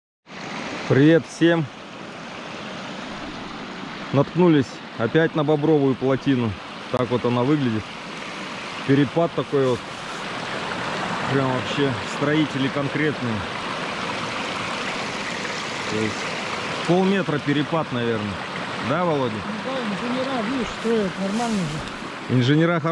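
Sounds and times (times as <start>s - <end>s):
water rushing over dam: 0.4s - 22.9s.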